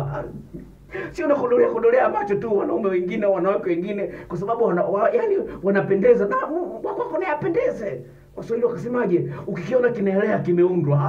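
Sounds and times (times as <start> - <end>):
man speaking animatedly: 0.0 - 11.0.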